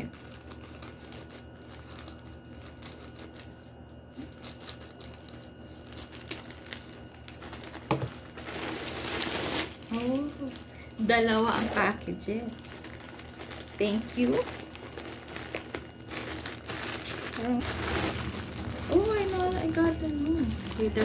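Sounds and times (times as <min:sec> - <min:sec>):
plastic crinkling: 0:00.0 - 0:21.0
plastic rustling: 0:00.0 - 0:21.0
scissors cutting plastic bag: 0:00.0 - 0:21.0.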